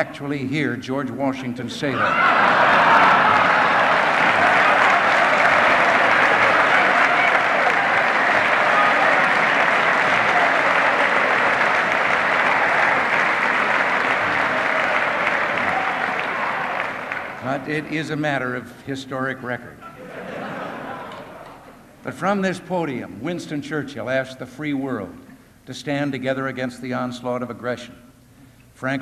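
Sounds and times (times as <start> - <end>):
audience laughing: 2.1 - 4.3, 19.8 - 21.8
audience applauding: 2.1 - 17.9, 20.4 - 21.7.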